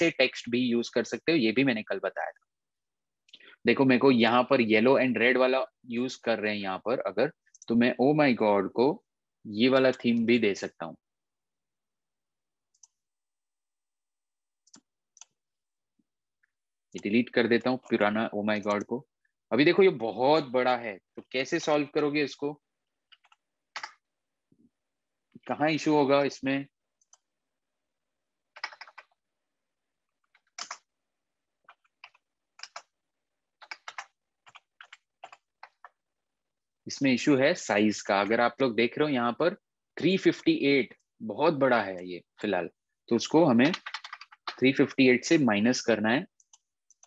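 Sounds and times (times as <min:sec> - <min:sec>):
computer mouse clicks: 0:07.4 - 0:07.7, 0:12.7 - 0:13.1, 0:14.6 - 0:15.4, 0:23.1 - 0:24.0, 0:27.0 - 0:27.3, 0:28.5 - 0:29.2, 0:30.2 - 0:30.9, 0:31.6 - 0:33.0, 0:33.6 - 0:36.0, 0:43.6 - 0:44.7, 0:46.4 - 0:47.0.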